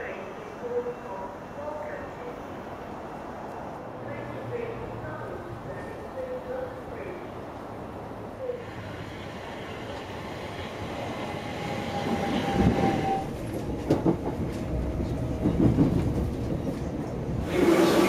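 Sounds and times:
train rumbling on track: 0:00.0 - 0:18.0.

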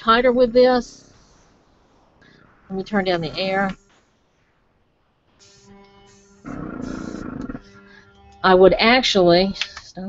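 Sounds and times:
air compressor humming: 0:05.2 - 0:08.6
airbrush air hiss: 0:05.4 - 0:08.0.

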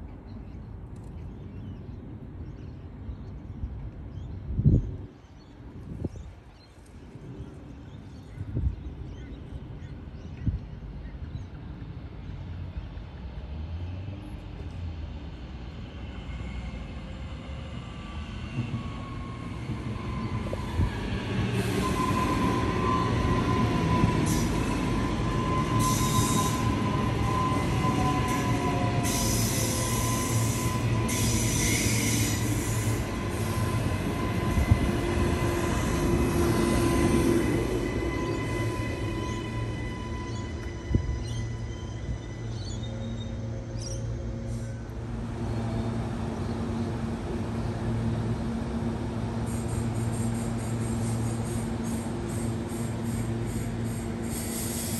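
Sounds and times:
electric train passing: 0:10.9 - 0:54.9.

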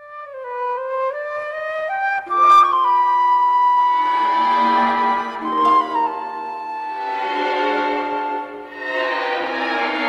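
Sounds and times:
melody of held notes: 0:02.2 - 0:09.6
low sustained notes: 0:04.0 - 0:10.0.

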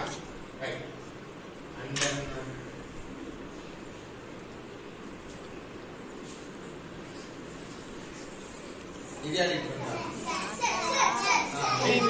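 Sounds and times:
children calling out: 0:09.8 - 0:12.0.

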